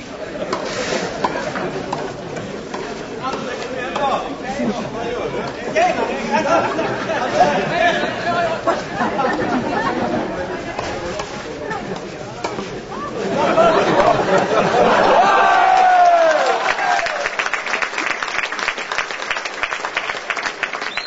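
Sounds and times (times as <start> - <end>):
people chattering: 0.0 - 21.0.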